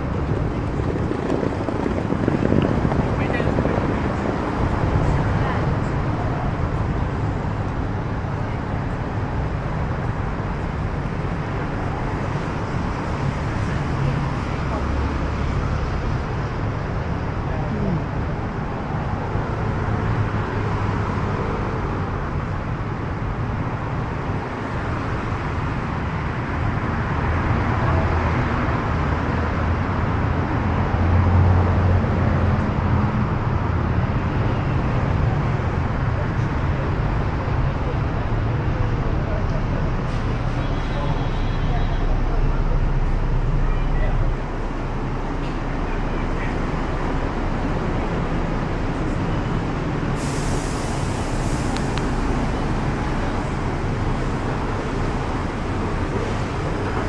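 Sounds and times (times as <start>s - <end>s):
people's voices: 0.0s - 16.2s, 17.4s - 19.2s, 36.0s - 57.0s
traffic noise: 0.0s - 57.0s.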